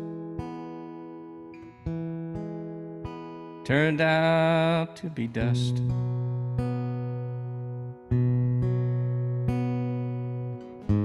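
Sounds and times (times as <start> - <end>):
acoustic guitar strumming: 0.0 - 11.0
person singing: 3.7 - 5.9.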